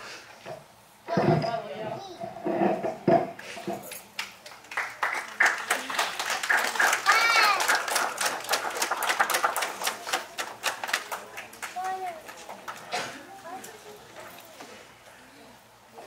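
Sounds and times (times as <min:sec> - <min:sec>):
group applauding: 0:03.9 - 0:13.1.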